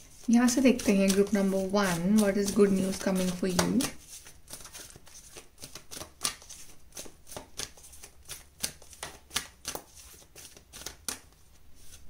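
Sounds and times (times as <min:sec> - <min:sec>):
cards being shuffled: 0:00.0 - 0:12.0.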